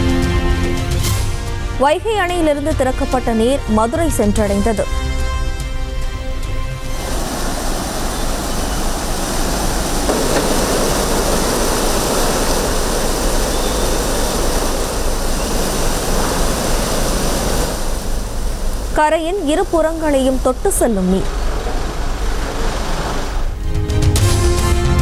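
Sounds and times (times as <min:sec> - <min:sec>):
water rushing over weir: 0:06.8 - 0:23.6.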